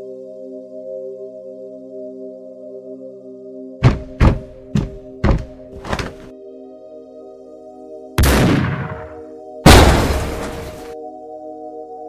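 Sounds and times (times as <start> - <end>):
sustained ambient music chords: 0.0 - 12.0
heavy thuds: 3.8 - 6.3.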